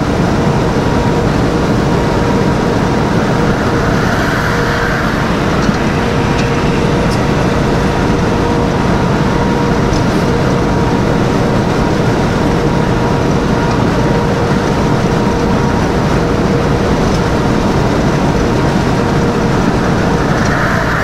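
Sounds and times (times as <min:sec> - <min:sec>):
truck engine and road noise: 0:00.0 - 0:21.0.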